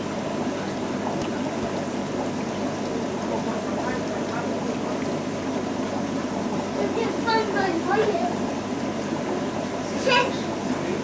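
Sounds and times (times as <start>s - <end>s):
aquarium equipment humming: 0.0s - 11.0s.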